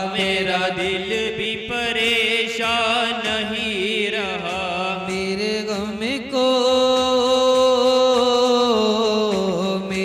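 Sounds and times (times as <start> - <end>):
person chanting devotional song: 0.0 - 10.0.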